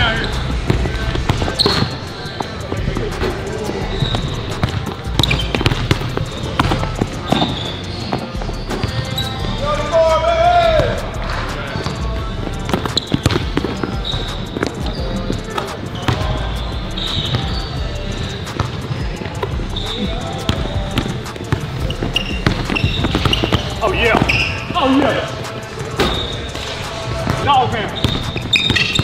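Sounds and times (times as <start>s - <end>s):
voices calling out: 0.0s - 29.0s
basketball dribbling on wooden floor: 3.9s - 8.9s, 12.7s - 15.0s, 20.5s - 24.4s, 28.0s - 29.0s.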